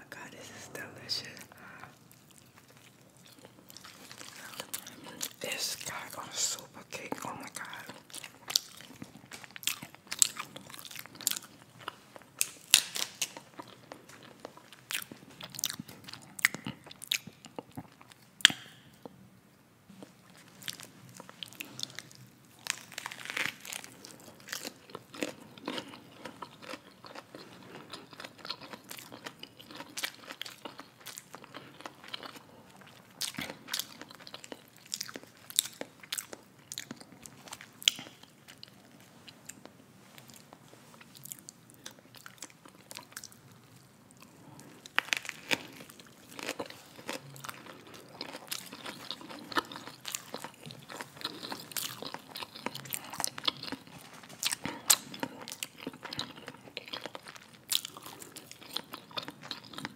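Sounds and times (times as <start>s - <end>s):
crunchy chewing: 1.3s - 19.1s, 19.9s - 59.9s.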